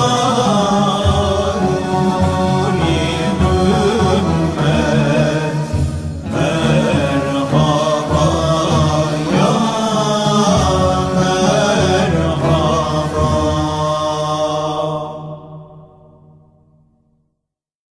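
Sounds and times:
men chanting: 0.0 - 15.8.

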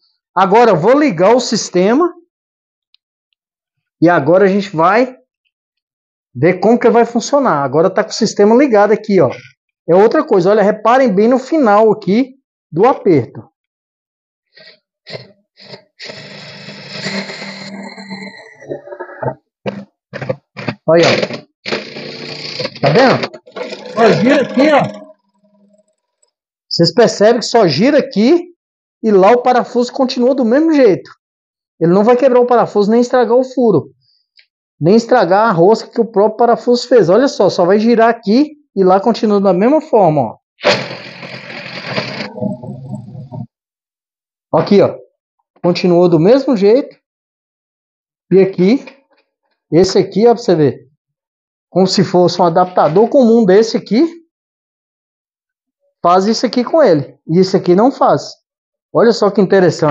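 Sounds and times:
cordless impact driver running: 21.7 - 22.7.

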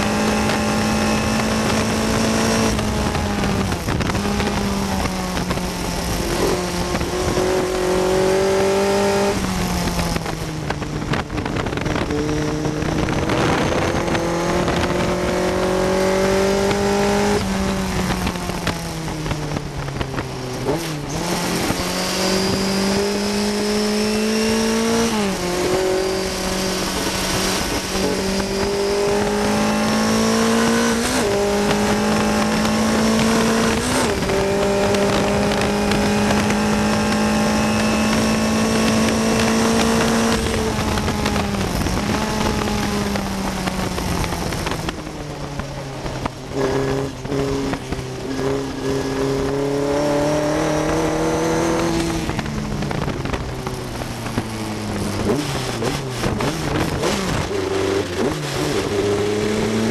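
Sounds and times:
racing car engine: 0.0 - 59.9.

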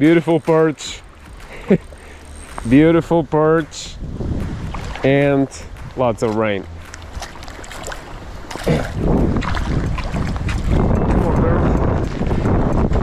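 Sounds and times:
wind buffeting microphone: 0.0 - 13.0
fish splashing in water: 6.8 - 10.7.

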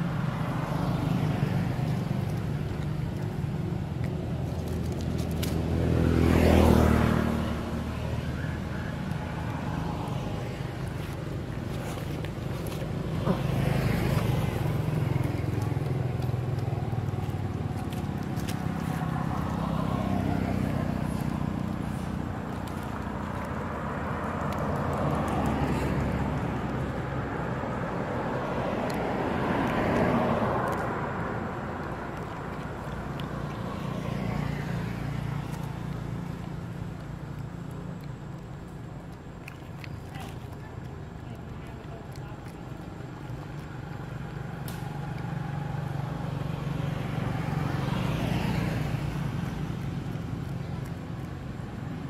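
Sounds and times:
vehicle engine hum passing: 0.0 - 52.0.

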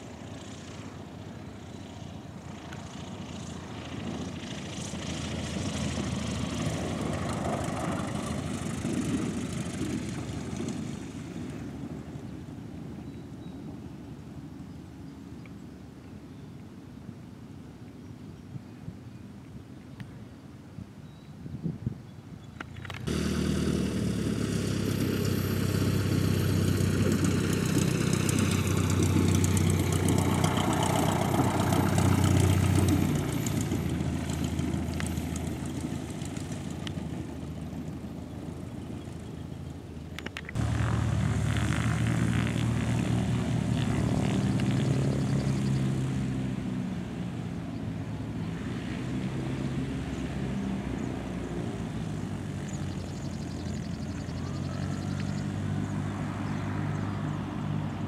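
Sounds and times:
propeller airplane passing: 0.0 - 17.7, 22.6 - 58.0
light aircraft engine: 0.0 - 58.0.

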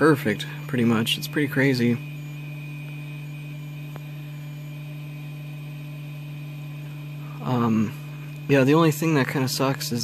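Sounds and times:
machine electrical hum: 0.0 - 10.0.

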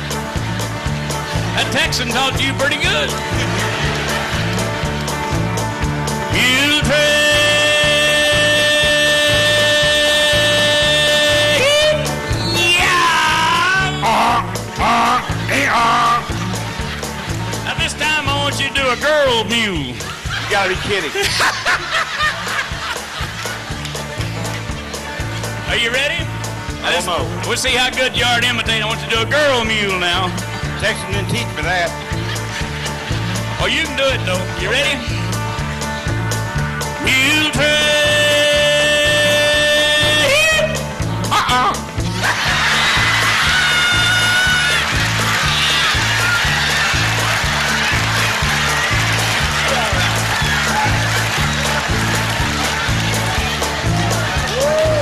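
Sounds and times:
band playing country beat: 0.0 - 55.0
people laughing and snickering: 2.8 - 5.6, 7.6 - 25.5, 31.4 - 35.3, 41.3 - 55.0
man imitating mule bray: 9.2 - 16.4.

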